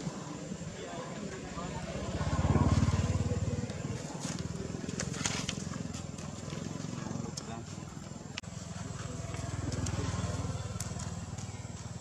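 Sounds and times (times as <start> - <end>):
vehicle engine passing: 1.3 - 12.0.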